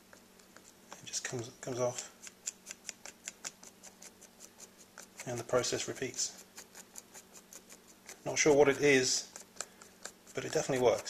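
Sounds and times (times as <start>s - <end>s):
stick scraping and tapping a board: 0.0s - 11.0s.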